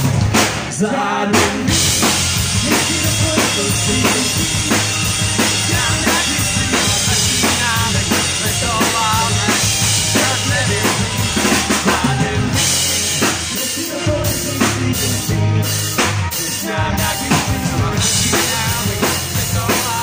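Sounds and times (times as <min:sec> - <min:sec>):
drum kick and snare beat: 0:00.0 - 0:00.8, 0:01.4 - 0:15.2
live rock band playing: 0:00.0 - 0:20.0.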